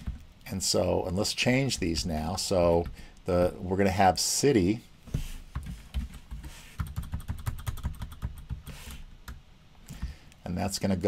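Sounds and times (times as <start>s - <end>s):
computer keyboard typing: 5.6s - 9.4s.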